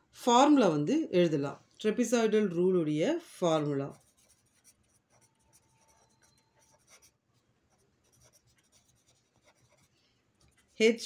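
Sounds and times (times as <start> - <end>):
pen scratching on paper: 3.9 - 9.9.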